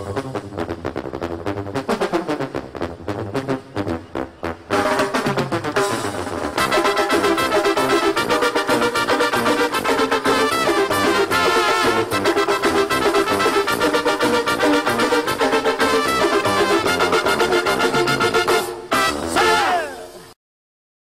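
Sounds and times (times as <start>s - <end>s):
brass horn lines: 0.0s - 20.3s
keyboards: 0.0s - 20.3s.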